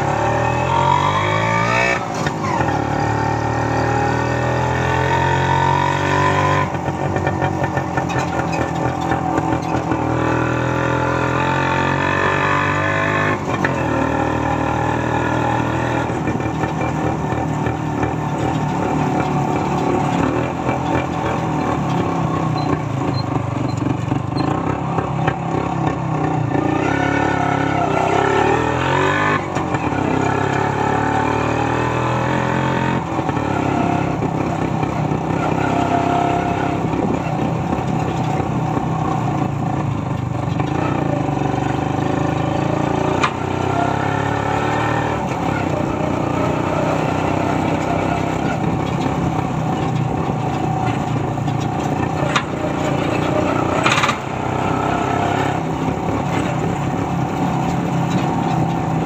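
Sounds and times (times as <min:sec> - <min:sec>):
road noise: 0:00.0 - 0:59.0
two-stroke motorcycle engine: 0:00.0 - 0:59.0.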